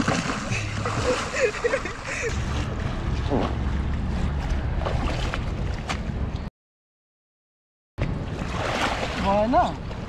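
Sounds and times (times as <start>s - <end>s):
water sloshing and splashing: 0.0s - 6.5s, 8.0s - 10.0s
wind rumble on microphone: 2.1s - 6.5s.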